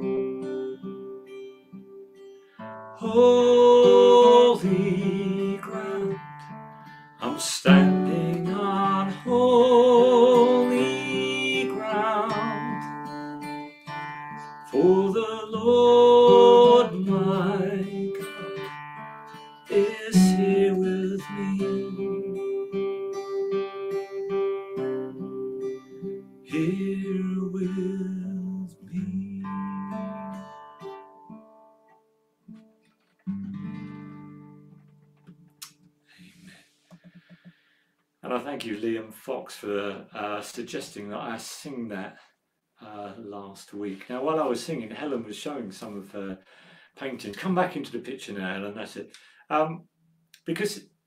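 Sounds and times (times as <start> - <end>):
acoustic guitar strumming: 0.0 - 37.5
man singing a wavering note: 3.0 - 6.2, 7.2 - 12.8, 19.7 - 22.4.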